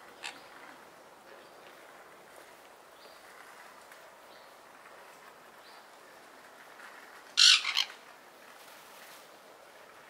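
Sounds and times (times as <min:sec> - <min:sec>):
parrot raspy screech: 0:07.4 - 0:07.9.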